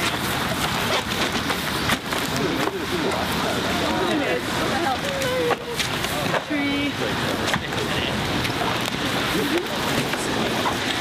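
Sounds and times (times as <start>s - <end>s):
people chattering: 2.2s - 11.0s.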